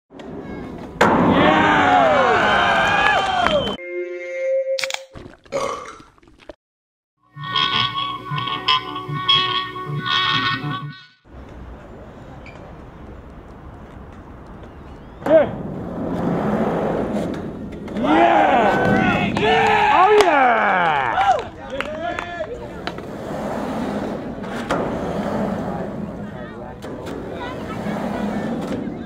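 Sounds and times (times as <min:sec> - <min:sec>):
skateboard wheels rolling on metal: 0:00.1 - 0:03.6, 0:07.3 - 0:20.2, 0:21.1 - 0:29.0.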